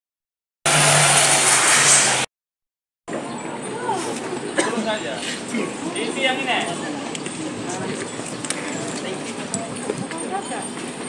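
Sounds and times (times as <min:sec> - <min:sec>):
rushing engine noise: 0:00.6 - 0:02.3.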